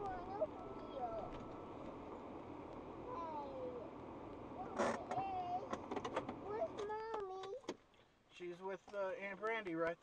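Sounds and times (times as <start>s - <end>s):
steady low hum: 0.0s - 6.6s.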